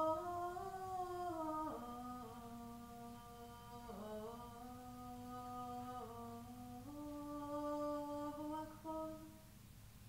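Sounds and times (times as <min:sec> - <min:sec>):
person chanting: 0:00.0 - 0:09.4.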